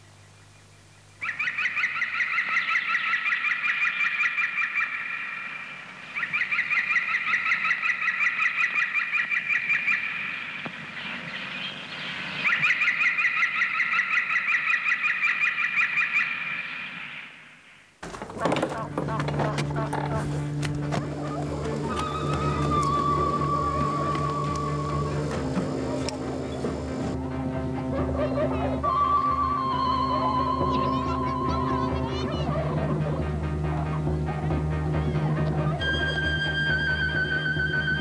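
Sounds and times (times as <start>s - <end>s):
birds chattering: 18.1s - 27.2s.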